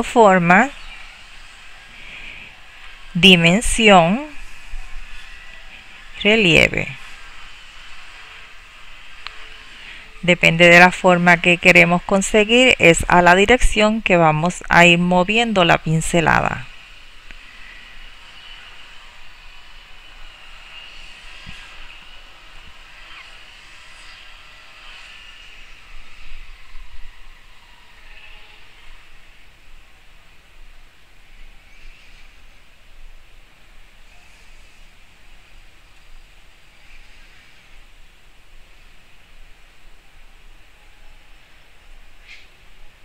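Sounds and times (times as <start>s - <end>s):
low steady hiss: 0.0s - 43.0s.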